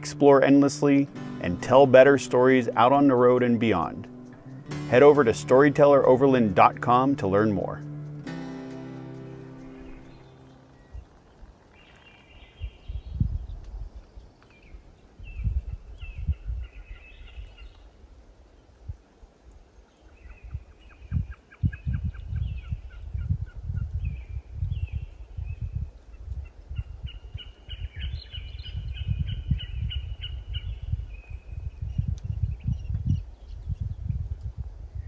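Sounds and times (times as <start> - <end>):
small birds singing: 0.0 - 18.0, 19.7 - 34.2
wind buffeting microphone: 9.9 - 35.0.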